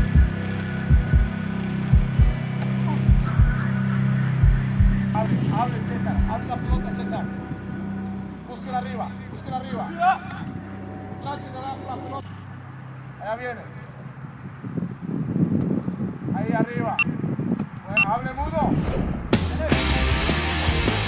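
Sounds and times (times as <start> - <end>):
steady low hum: 0.0 - 15.0
low thumps: 6.0 - 7.0.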